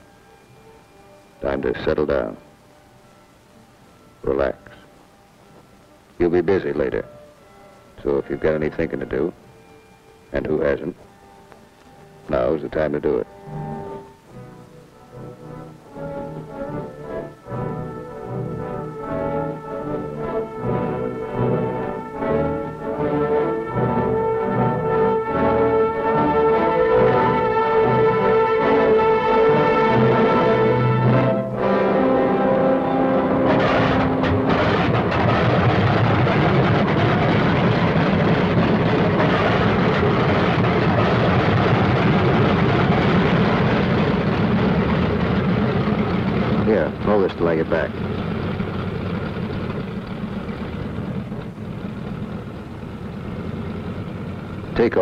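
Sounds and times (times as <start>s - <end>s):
orchestral music with brass: 6.2s - 45.0s
radial aircraft engine running: 7.9s - 55.0s.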